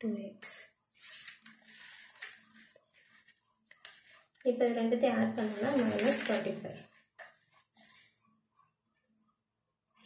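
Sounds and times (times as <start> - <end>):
paper sheet rustling: 0.9 - 8.3.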